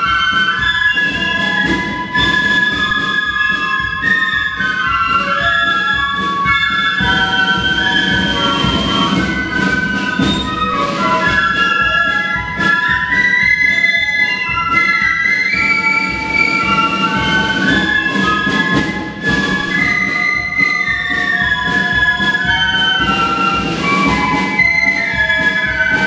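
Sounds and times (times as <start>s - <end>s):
flute band playing: 0.0s - 26.0s.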